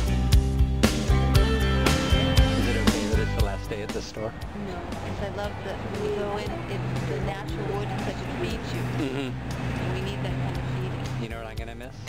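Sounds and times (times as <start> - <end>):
vehicle engine humming: 0.0 - 12.0
faint voices: 2.6 - 11.5.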